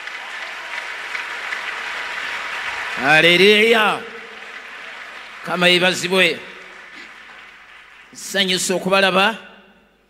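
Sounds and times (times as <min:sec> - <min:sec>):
crowd applauding: 0:00.0 - 0:09.2.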